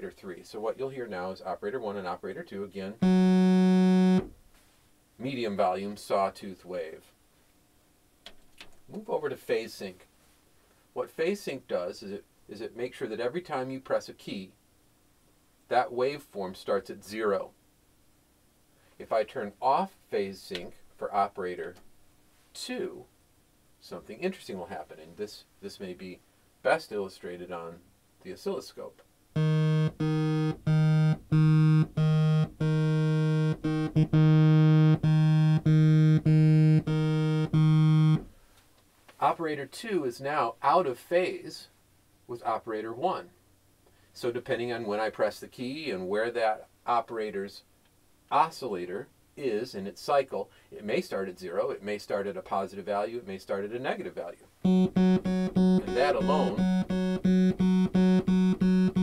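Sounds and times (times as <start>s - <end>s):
synthesizer low sawtooth note: 3.0s - 4.3s, 29.4s - 38.3s, 54.6s - 59.0s.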